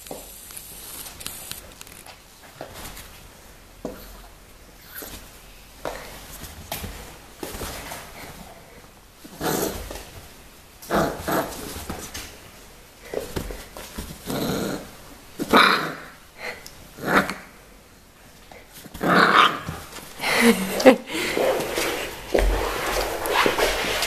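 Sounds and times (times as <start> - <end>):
puppy growling: 10.8 - 11.8, 14.2 - 16.2, 16.9 - 17.5, 18.9 - 19.8.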